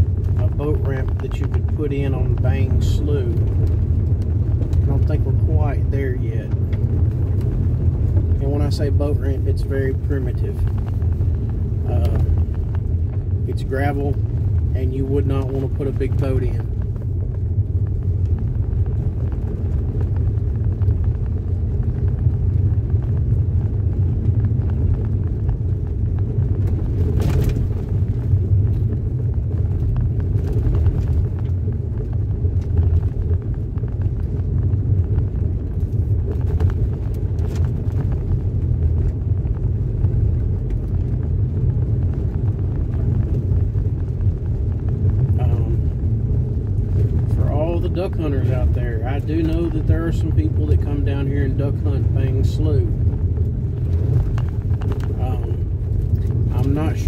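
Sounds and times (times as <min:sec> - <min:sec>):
tyres rumbling on dirt road: 0:00.0 - 0:57.0.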